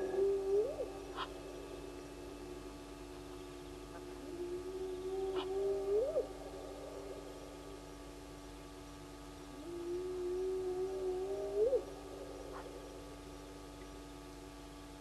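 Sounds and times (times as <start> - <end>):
animal call: 0.0 - 1.7, 3.9 - 7.4.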